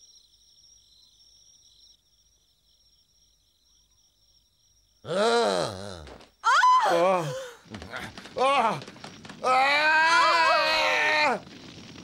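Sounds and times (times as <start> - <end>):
man groaning: 5.1 - 6.2
high voice crying out: 5.1 - 7.5.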